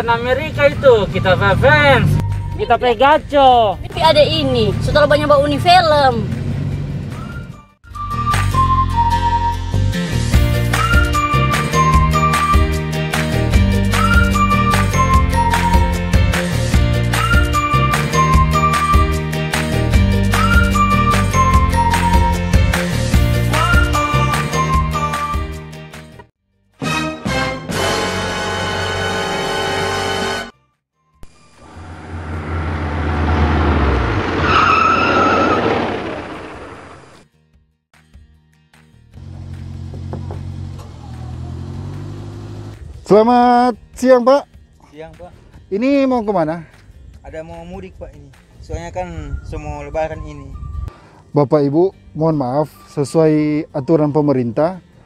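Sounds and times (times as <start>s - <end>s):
car engine hum: 0.0s - 7.5s, 31.5s - 37.2s, 39.2s - 43.1s
road noise: 0.0s - 8.1s, 31.2s - 37.2s, 39.2s - 43.3s
tyre squeal: 34.4s - 35.9s.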